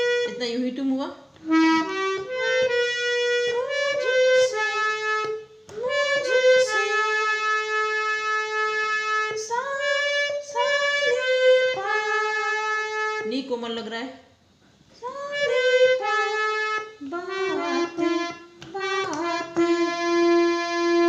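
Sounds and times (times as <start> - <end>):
harmonium playing slow melody: 1.4 - 12.0, 15.5 - 21.0.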